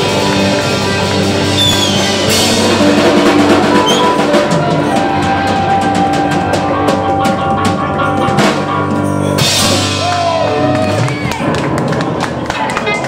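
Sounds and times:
drum roll: 0:00.0 - 0:13.0
held guitar and bass notes: 0:00.0 - 0:13.0.

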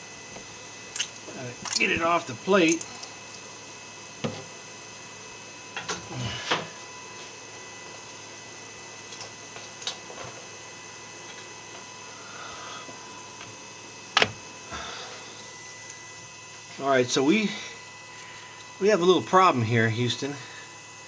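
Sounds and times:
fans humming: 0:00.0 - 0:21.0.

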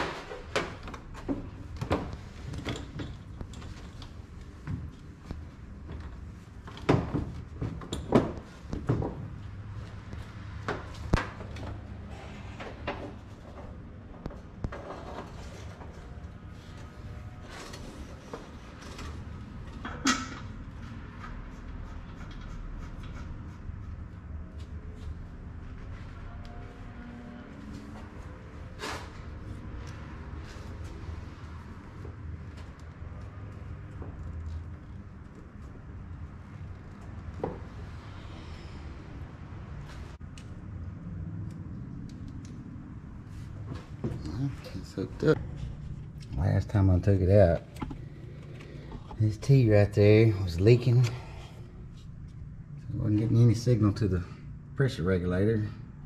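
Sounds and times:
steady low hum: 0:00.3 - 0:56.0.

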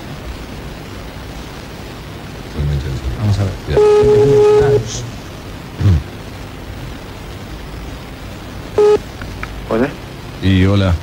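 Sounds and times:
telephone line hiss: 0:02.7 - 0:05.3, 0:08.7 - 0:09.1
ringback tone beep: 0:03.8 - 0:04.9, 0:08.8 - 0:09.0.

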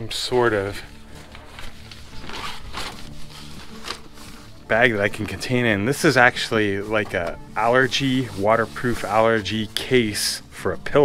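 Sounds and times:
fabric rustling and scraping: 0:00.3 - 0:10.2.

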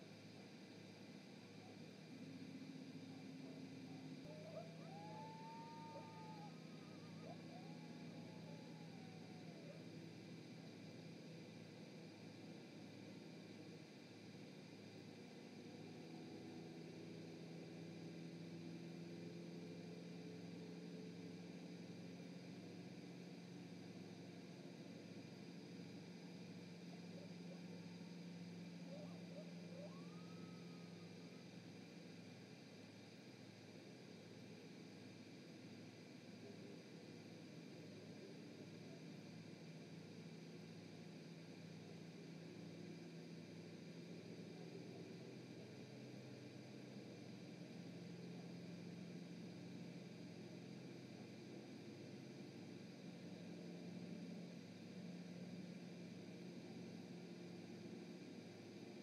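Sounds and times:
low electrical hum: 0:00.0 - 0:59.0
thin whistle-like tone: 0:03.1 - 0:09.8, 0:28.3 - 0:31.5
distant howling: 0:03.8 - 0:09.8.

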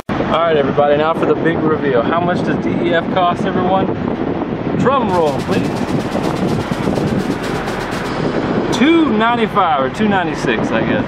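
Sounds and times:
person speaking: 0:05.1 - 0:05.9
drum roll: 0:05.1 - 0:08.6.

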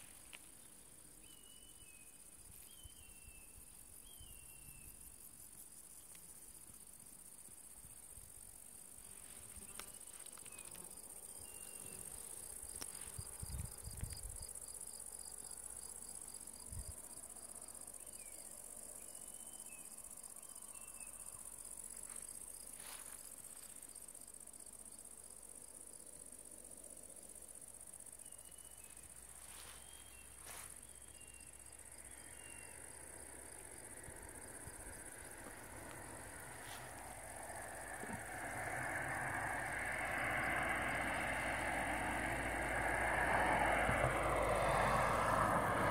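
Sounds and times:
insects chirring: 0:00.0 - 0:45.9
car passing on road: 0:28.9 - 0:45.9.

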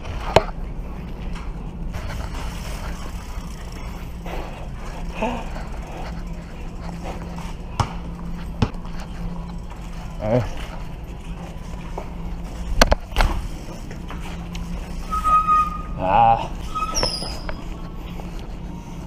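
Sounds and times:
bicycle rolling hum: 0:00.0 - 0:19.0.

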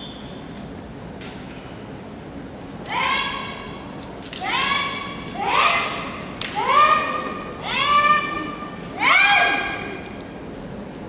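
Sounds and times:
women shouting: 0:04.4 - 0:10.0.

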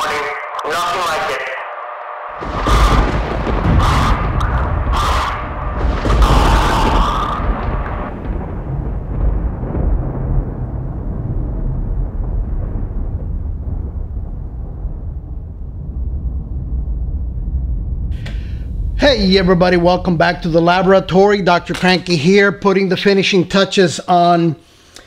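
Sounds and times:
explosion with deep rumble: 0:02.4 - 0:21.9.

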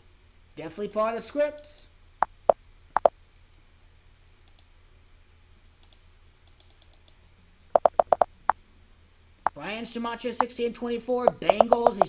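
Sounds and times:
computer keyboard typing: 0:07.8 - 0:08.3, 0:11.3 - 0:12.0.

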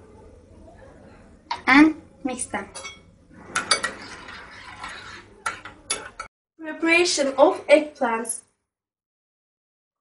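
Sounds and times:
spoon stirring in glass bowl: 0:02.7 - 0:06.3.

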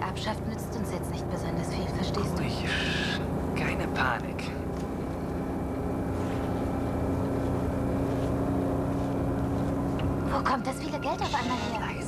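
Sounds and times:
bus engine drone: 0:00.0 - 0:12.0
steady humming tone: 0:00.0 - 0:12.0.

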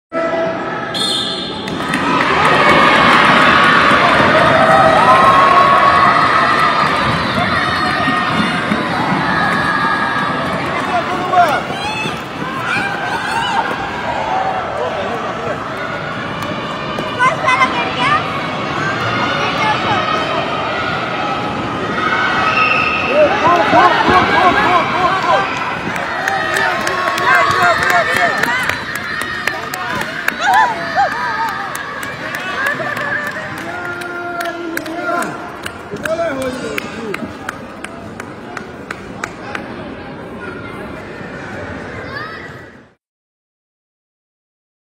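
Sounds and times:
crowd talking and calling out: 0:00.1 - 0:43.0
spectators shouting encouragement: 0:01.8 - 0:37.1.

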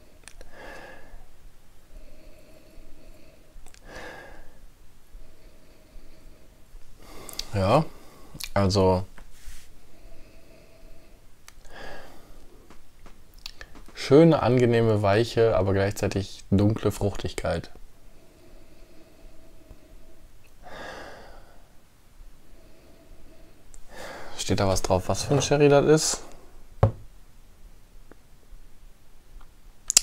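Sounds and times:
breath drawn in: 0:09.3 - 0:11.1.

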